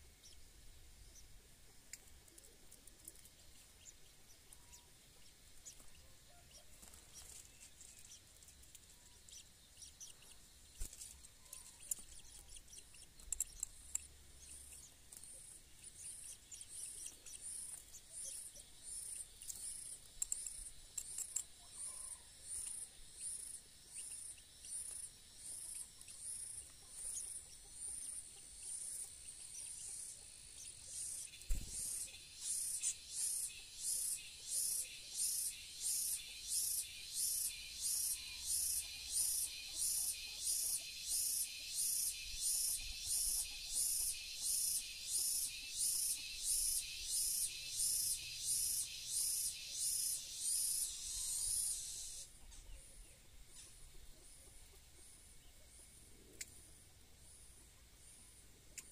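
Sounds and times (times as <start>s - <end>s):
nestlings begging with high chirps: 0.0s - 55.6s.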